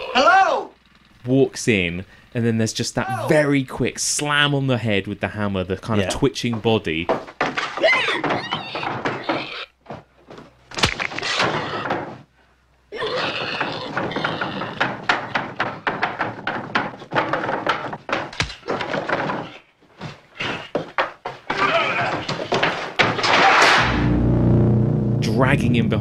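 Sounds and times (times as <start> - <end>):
thumps and knocks: 6.1 - 12.3, 13.3 - 23.9
low drone: 23.8 - 26.0.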